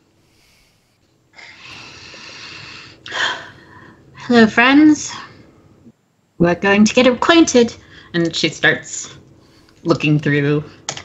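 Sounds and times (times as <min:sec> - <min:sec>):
person breathing out into microphone: 0:00.2 - 0:03.4.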